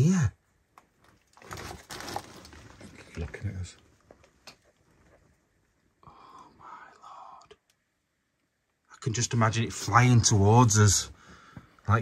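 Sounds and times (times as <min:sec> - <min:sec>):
man whispering: 0:06.0 - 0:07.8.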